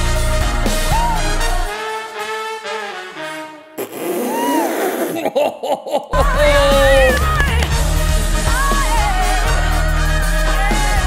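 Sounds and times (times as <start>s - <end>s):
woman singing vocal run: 6.2s - 7.8s, 8.4s - 11.0s.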